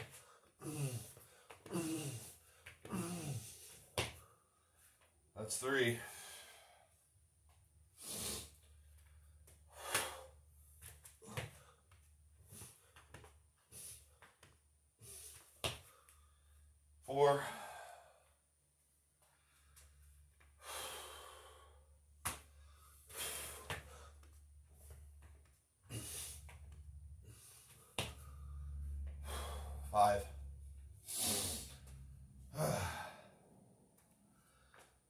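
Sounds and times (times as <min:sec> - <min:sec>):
man breathing hard: 0:00.0 - 0:04.9, 0:06.0 - 0:07.1, 0:08.0 - 0:14.4, 0:15.0 - 0:18.4, 0:19.2 - 0:25.0, 0:25.8 - 0:33.6
voiced sigh: 0:28.9 - 0:30.4, 0:32.5 - 0:33.5.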